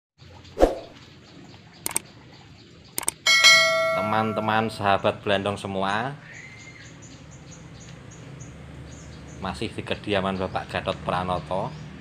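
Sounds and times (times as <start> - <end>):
double mouse clicks: 1.8 - 2.0, 3.0 - 3.2
bell chime: 3.3 - 5.1.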